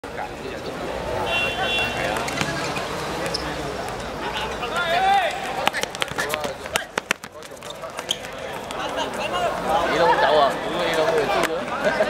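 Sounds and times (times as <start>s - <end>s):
people shouting and chatting: 0.0s - 12.0s
football kicked and bouncing: 5.6s - 8.8s.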